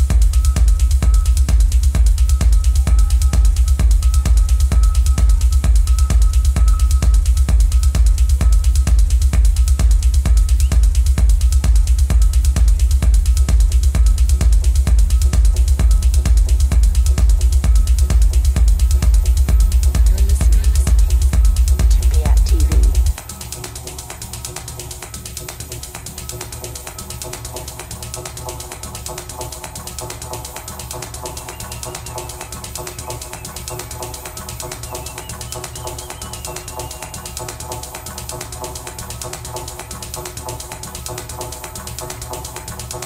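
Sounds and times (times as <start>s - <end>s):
fast clicking percussion loop: 0.0s - 43.0s.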